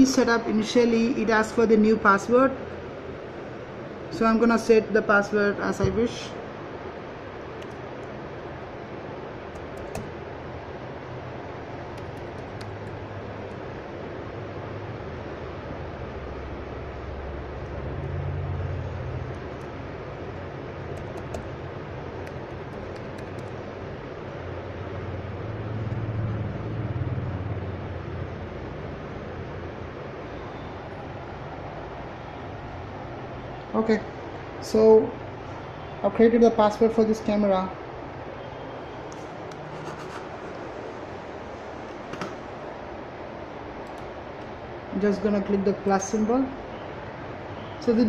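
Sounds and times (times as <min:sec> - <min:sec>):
fan or air conditioner noise: 0:00.0 - 0:48.0
laptop keys clicking: 0:09.5 - 0:10.2, 0:11.9 - 0:13.6, 0:20.9 - 0:21.6, 0:22.2 - 0:23.6.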